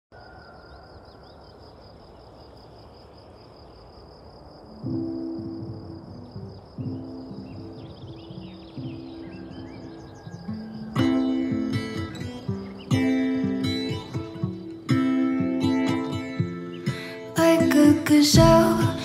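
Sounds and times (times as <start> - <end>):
insects trilling: 0.1 - 19.0
guitar chords ringing: 4.8 - 19.0
birds chirping: 6.2 - 17.3.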